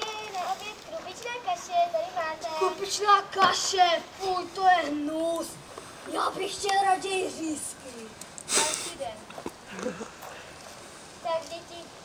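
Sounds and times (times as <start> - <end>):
children talking: 0.0 - 10.4, 11.2 - 12.0.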